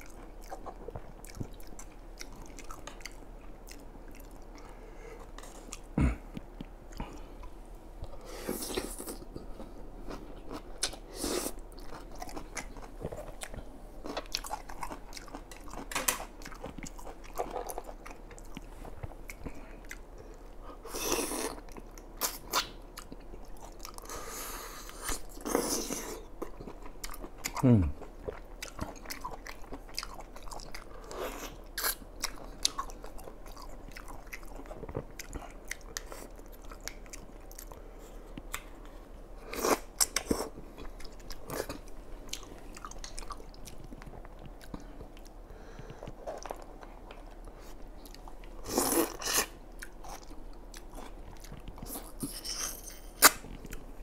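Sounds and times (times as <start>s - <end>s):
person chewing wetly: 0.0s - 52.4s.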